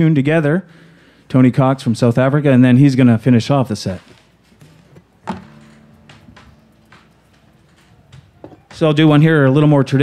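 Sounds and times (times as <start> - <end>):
guitar strings ringing: 4.7 - 9.2
knock on guitar body: 5.2 - 8.8.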